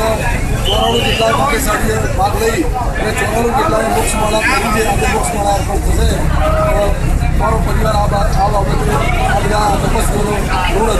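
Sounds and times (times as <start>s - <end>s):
crowd babble: 0.0s - 10.9s
man speaking into microphones: 0.0s - 10.9s.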